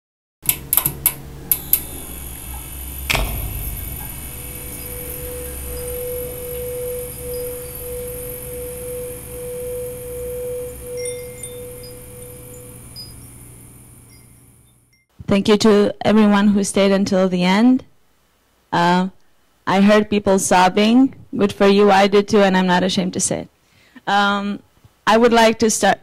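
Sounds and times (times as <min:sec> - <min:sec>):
sharp clicks: 0:00.4 - 0:09.4
long pulsing held tone: 0:01.5 - 0:15.0
faint high chimes: 0:01.5 - 0:15.1
music hit: 0:01.7 - 0:13.4.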